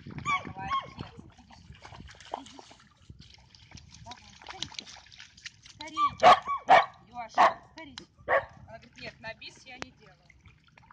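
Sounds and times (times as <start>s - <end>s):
dog barking: 6.2s - 7.7s, 8.3s - 8.5s.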